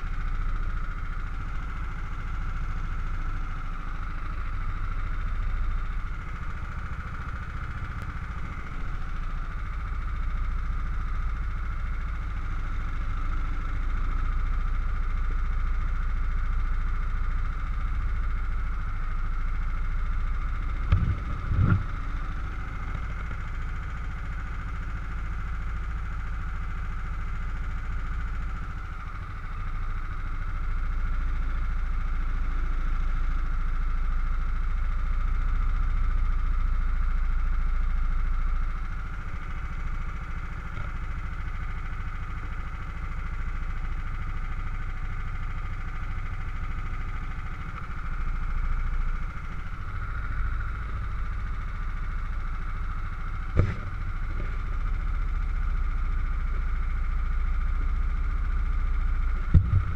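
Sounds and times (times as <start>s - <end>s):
kart engine idling: 0.0s - 59.9s.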